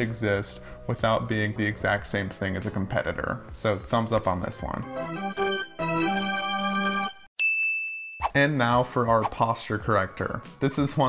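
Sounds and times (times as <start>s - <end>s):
background music chord: 0.0s - 7.3s
bright ding chime: 7.4s - 8.4s.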